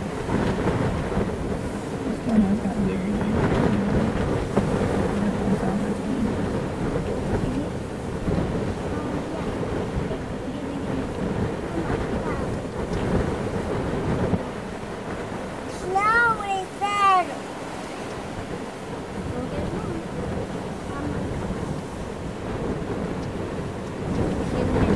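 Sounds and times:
gusty wind buffeting microphone: 0:00.0 - 0:24.9.

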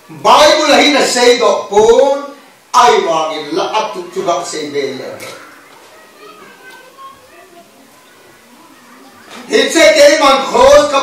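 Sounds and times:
faint children's voices: 0:00.0 - 0:01.2, 0:03.3 - 0:11.0
man speaking loudly: 0:00.1 - 0:05.4, 0:09.5 - 0:11.0.

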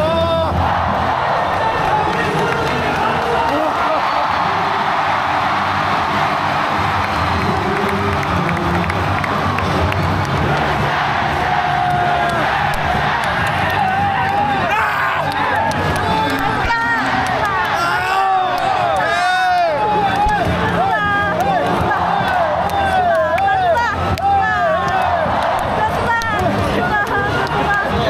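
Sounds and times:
crowd cheering and shouting: 0:00.0 - 0:28.0
stadium music: 0:00.0 - 0:28.0.

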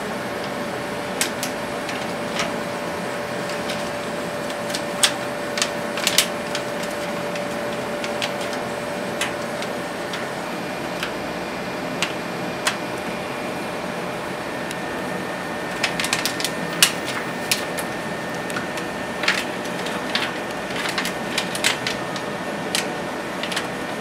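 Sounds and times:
mechanical hum: 0:00.0 - 0:24.0.

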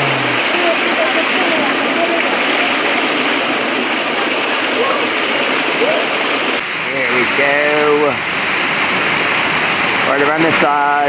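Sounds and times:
waterfall splashing into pond: 0:00.0 - 0:11.0.

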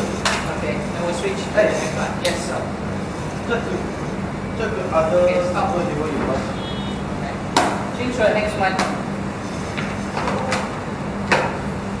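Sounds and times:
fan flywheel whirring: 0:00.0 - 0:12.0.

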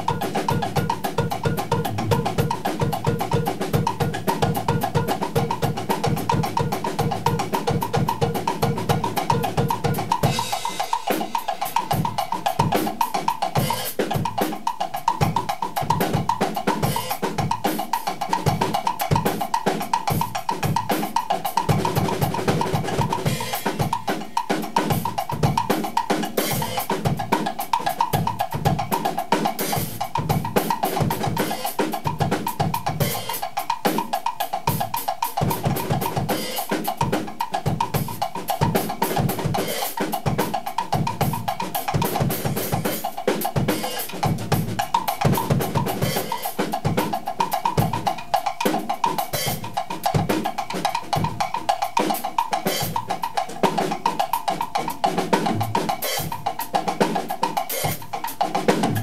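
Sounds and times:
cymbals: 0:00.0 - 0:59.0.

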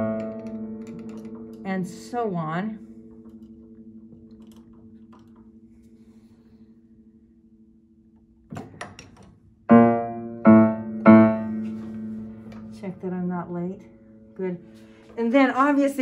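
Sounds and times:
piano action clicks: 0:00.0 - 0:01.9
piano note ringing: 0:00.0 - 0:16.0.

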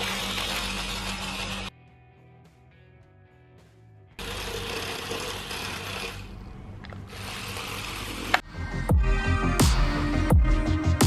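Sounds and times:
small electric motors whirring: 0:00.0 - 0:01.7, 0:04.2 - 0:08.5
electronic music: 0:08.4 - 0:11.0.

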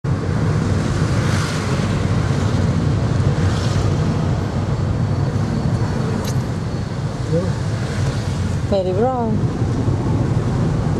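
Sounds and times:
car engine and tyre rumble: 0:00.0 - 0:10.9.

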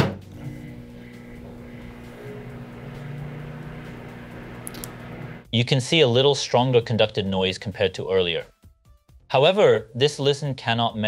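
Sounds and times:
microwave oven humming: 0:00.0 - 0:05.5.

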